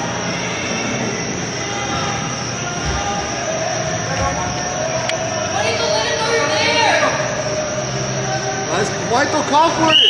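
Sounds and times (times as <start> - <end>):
echoing indoor soccer game din: 0.0 - 10.0.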